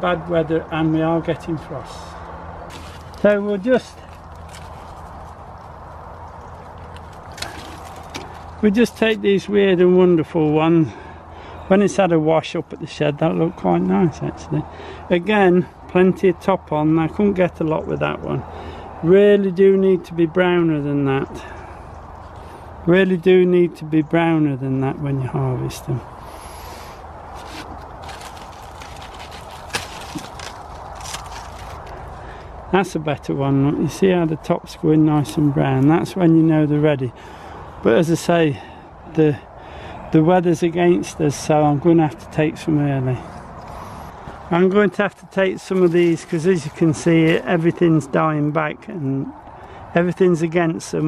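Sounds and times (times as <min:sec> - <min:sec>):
outdoor background hiss: 0:00.0 - 0:28.2
rustling of vines: 0:02.1 - 0:09.2, 0:26.0 - 0:32.8, 0:43.6 - 0:47.9.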